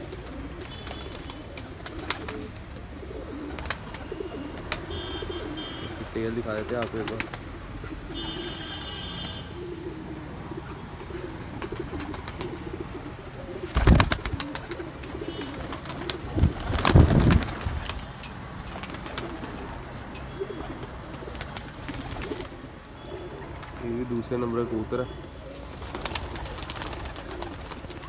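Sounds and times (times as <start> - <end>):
pigeon wing beats: 0.0 - 5.8, 6.6 - 9.8, 10.9 - 13.0, 13.6 - 19.8, 20.5 - 22.6, 25.7 - 28.0
pigeons cooing: 0.0 - 28.0.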